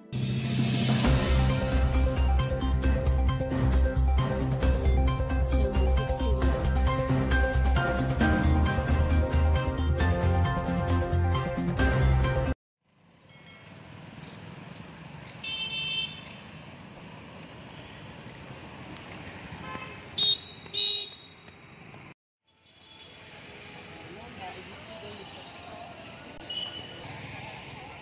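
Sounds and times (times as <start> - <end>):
city street traffic: 0.2 - 28.0
vehicle horn toots: 15.4 - 16.2, 19.6 - 21.4.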